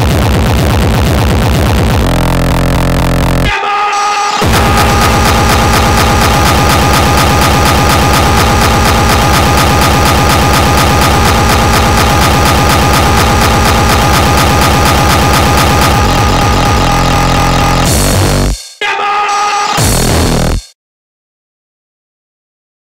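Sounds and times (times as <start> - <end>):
fast kick drum: 0.0 - 3.5, 4.4 - 18.6, 19.8 - 20.7
high held tones: 3.9 - 18.4.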